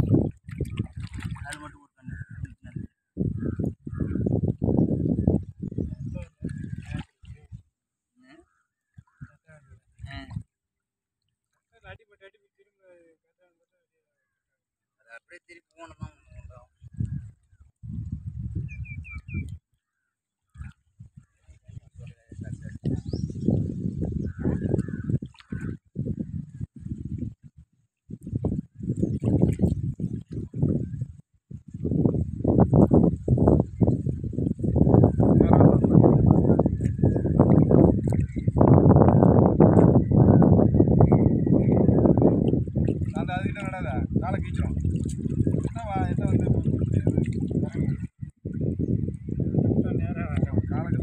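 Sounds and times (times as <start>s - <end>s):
wind buffeting microphone: 0.0s - 7.7s, 8.9s - 10.5s, 15.9s - 19.6s, 20.5s - 51.0s.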